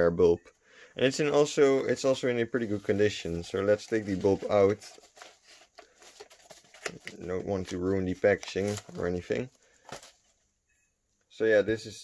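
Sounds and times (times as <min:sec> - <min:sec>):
paper packaging rustling: 0:01.2 - 0:10.4.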